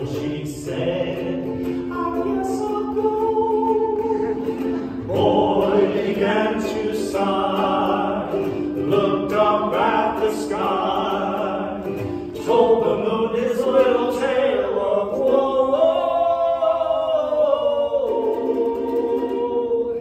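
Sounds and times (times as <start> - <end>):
people singing in harmony: 0.0 - 20.0
ukulele: 0.0 - 20.0.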